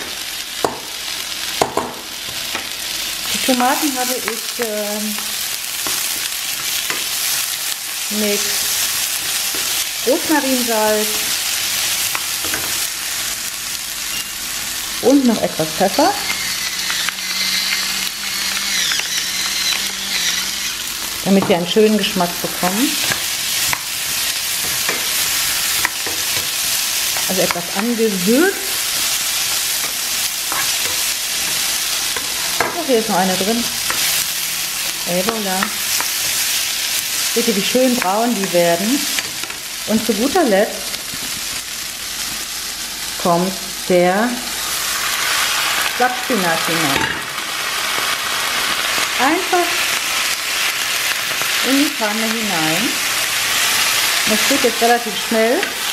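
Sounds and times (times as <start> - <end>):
oil sizzling: 0.0 - 55.9
pepper mill grinding: 15.9 - 21.3, 22.2 - 36.7.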